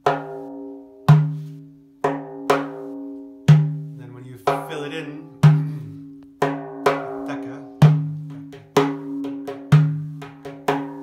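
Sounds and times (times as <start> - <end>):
frame drum strokes: 0.0 - 11.0.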